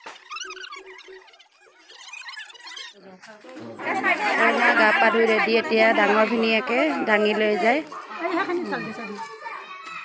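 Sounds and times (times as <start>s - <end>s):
women and children talking: 2.6s - 10.0s.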